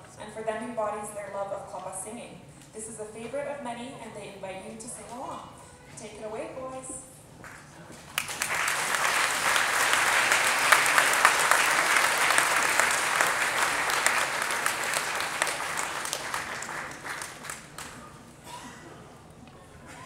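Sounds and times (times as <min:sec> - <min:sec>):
audience applause: 0:08.1 - 0:18.1.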